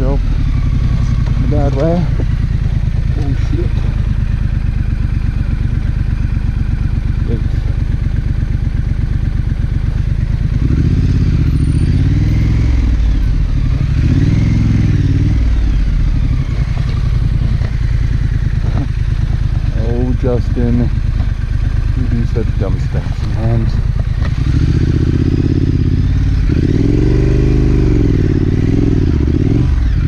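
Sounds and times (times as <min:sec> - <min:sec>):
motorcycle engine revving: 0:00.0 - 0:30.0.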